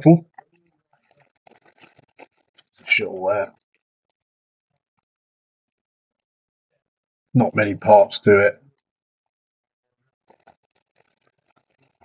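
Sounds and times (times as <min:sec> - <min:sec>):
plastic bag crinkling: 0:00.9 - 0:03.7, 0:10.3 - 0:12.0
man's voice: 0:02.8 - 0:03.5, 0:07.4 - 0:08.6.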